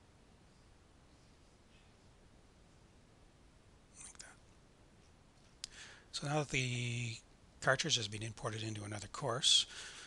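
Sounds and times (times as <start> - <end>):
soft hiss and click: 0.0 - 10.0.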